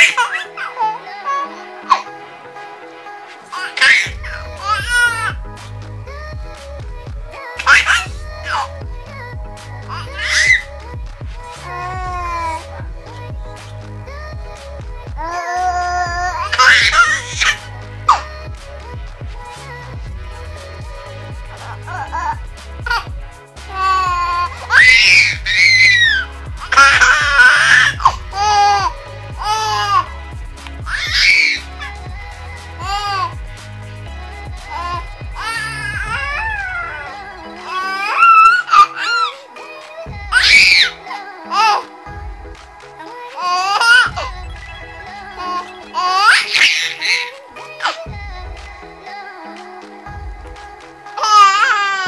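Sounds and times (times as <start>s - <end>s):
baby squealing with laughter: 0.0s - 2.0s, 3.5s - 5.4s, 7.6s - 8.7s, 9.9s - 10.7s, 15.3s - 18.2s, 23.8s - 30.1s, 30.9s - 31.9s, 32.8s - 33.3s, 34.7s - 39.4s, 40.3s - 41.8s, 43.4s - 48.0s, 51.2s - 52.0s
background music with bass: 0.0s - 52.0s.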